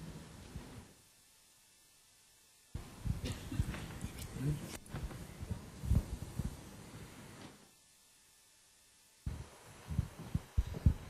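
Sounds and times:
room sound: 0.0s - 11.0s
low thuds and bumps: 4.9s - 6.6s, 9.3s - 11.0s.

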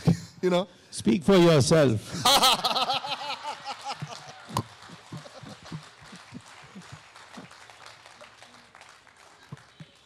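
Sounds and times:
scattered laughter: 2.2s - 4.4s, 5.1s - 5.8s
audience clapping: 2.6s - 10.0s.

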